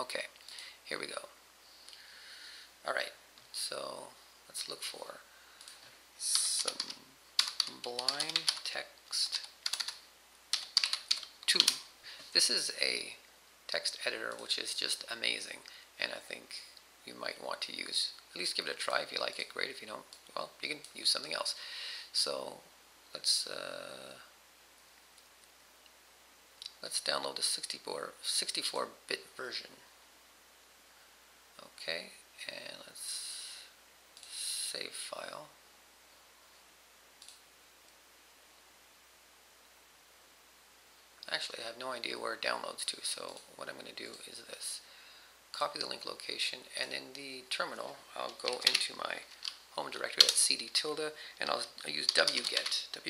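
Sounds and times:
computer keyboard typing: 6.3s - 11.9s, 48.3s - 49.6s, 52.0s - 52.8s.

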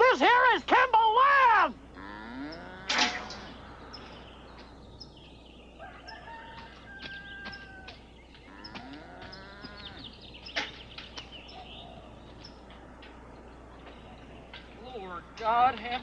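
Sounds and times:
rooster crowing: 5.8s - 10.0s
hens clucking: 5.8s - 11.3s.

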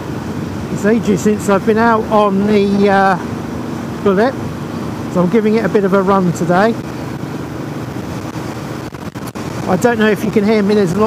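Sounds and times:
motorcycle engine running: 0.0s - 11.0s
wind noise on microphone: 6.7s - 11.0s.

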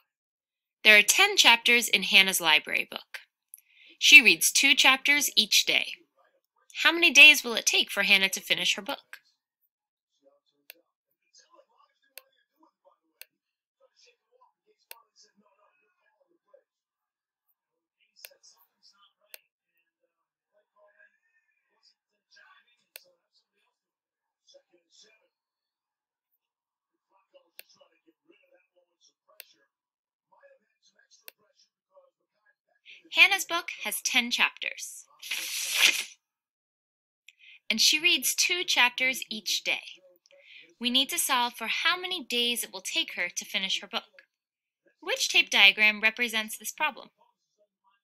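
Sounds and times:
faint murmur of voice: 10.2s - 17.1s, 18.0s - 25.4s, 26.9s - 32.7s.

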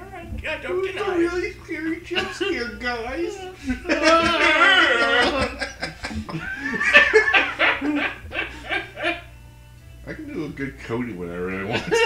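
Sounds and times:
men laughing: 0.7s - 9.5s, 11.6s - 12.0s.

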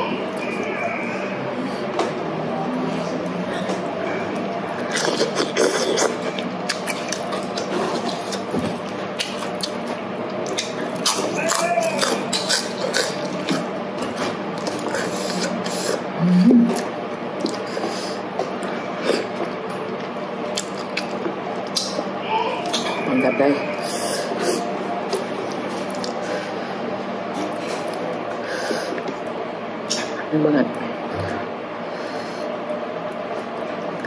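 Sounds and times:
low background hum: 0.0s - 34.0s
noodles and lettuce being chewed: 3.0s - 23.0s, 23.7s - 26.6s
short hummed sound: 10.8s - 19.9s.

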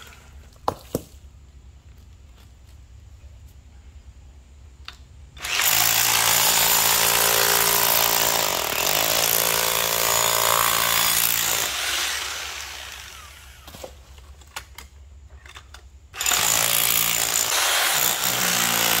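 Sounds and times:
electric rotary hammer chiselling: 5.4s - 13.7s, 16.2s - 19.0s.

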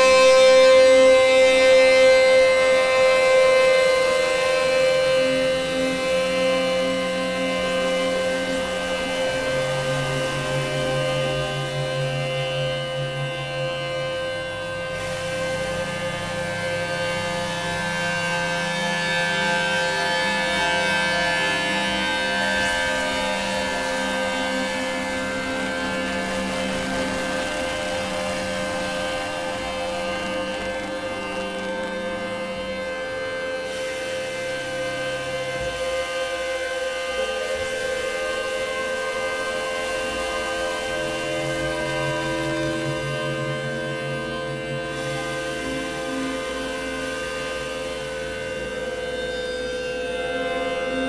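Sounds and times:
electronic synthesizer drone music: 0.0s - 51.0s.

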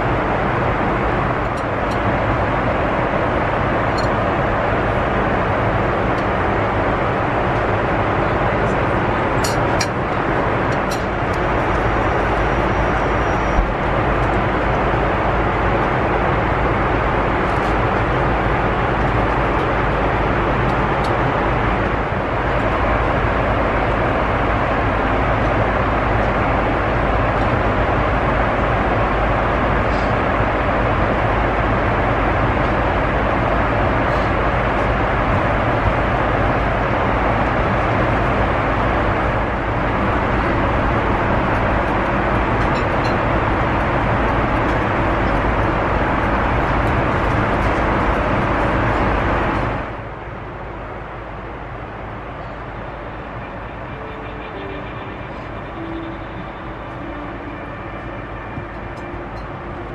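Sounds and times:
airplane cabin noise: 0.0s - 59.9s.

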